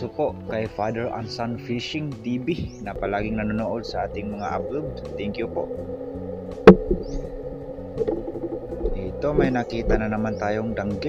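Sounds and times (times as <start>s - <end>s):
quiet background music: 0.0s - 11.0s
sharp knock: 6.6s - 7.2s.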